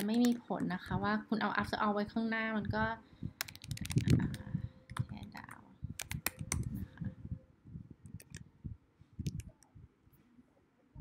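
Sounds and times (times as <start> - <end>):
typing on computer keyboard: 3.4 - 6.7, 8.2 - 8.4.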